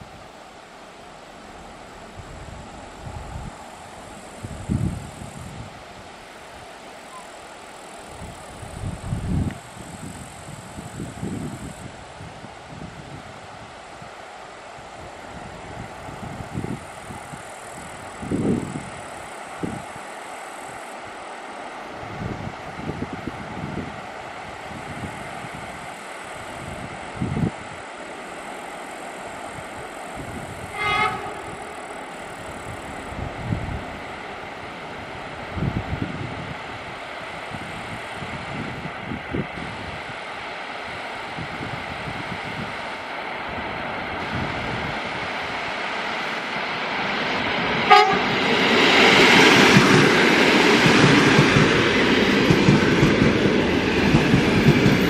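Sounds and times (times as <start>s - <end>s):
wind buffeting microphone: 1.6s - 6.2s, 8.1s - 14.2s, 14.8s - 20.0s, 22.0s - 27.8s, 29.5s - 55.0s
electric train running: 14.6s - 55.0s.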